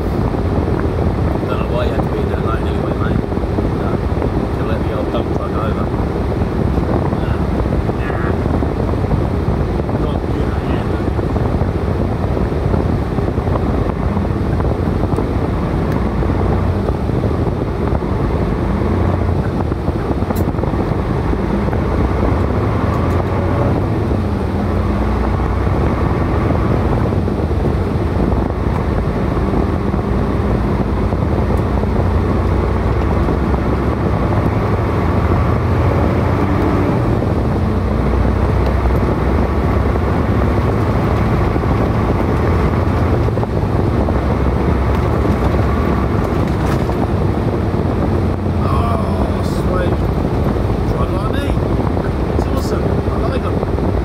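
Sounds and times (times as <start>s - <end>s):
truck engine rumble inside cab: 0.0s - 54.0s.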